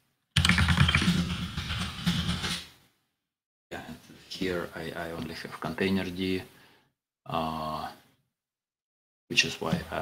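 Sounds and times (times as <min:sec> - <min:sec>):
rapid typing on keyboard: 0:00.4 - 0:02.6.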